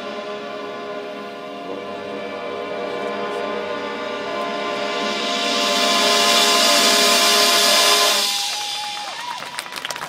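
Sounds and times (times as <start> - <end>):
marching band holding a chord: 0.0 - 9.4.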